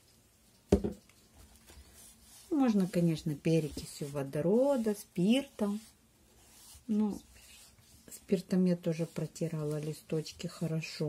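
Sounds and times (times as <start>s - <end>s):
cotton pad rubbing leaves: 1.4s - 11.0s.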